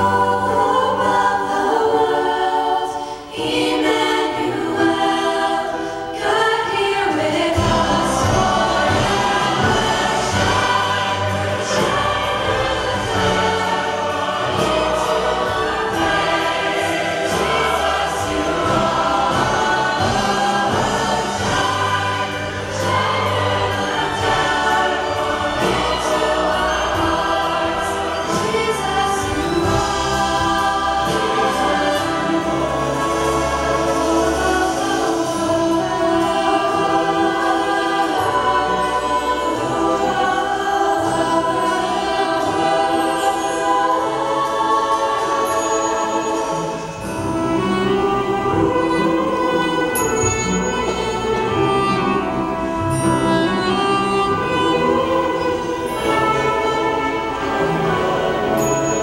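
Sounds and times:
choir singing with orchestra: 0:00.0 - 0:59.0.

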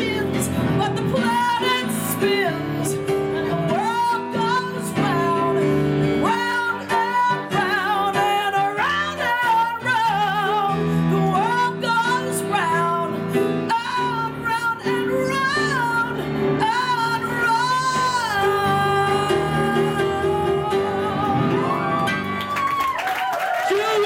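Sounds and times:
woman singing with vibrato: 0:00.0 - 0:21.9
grand piano accompaniment: 0:00.0 - 0:23.4.

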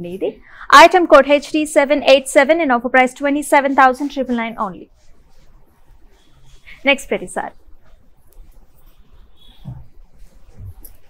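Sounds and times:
fabric rustling: 0:03.4 - 0:11.0.

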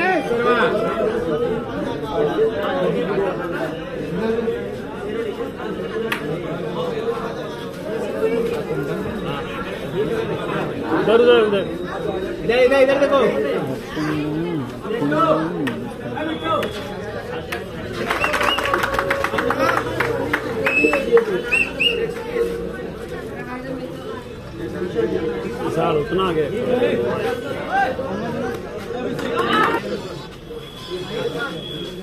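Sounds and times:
people talking and chattering: 0:00.0 - 0:32.0.

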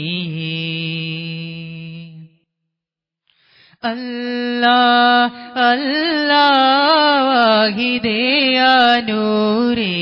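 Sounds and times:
person singing unaccompanied: 0:00.0 - 0:02.3, 0:03.8 - 0:10.0.

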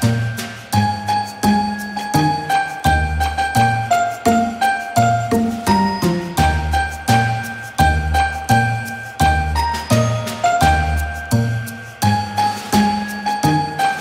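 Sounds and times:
bell-like chiming melody: 0:00.0 - 0:14.0.

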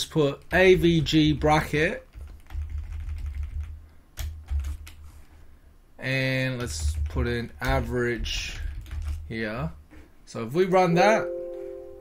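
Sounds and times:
low steady hum: 0:00.0 - 0:12.0
computer keyboard keystrokes: 0:02.1 - 0:05.1, 0:06.6 - 0:09.2.

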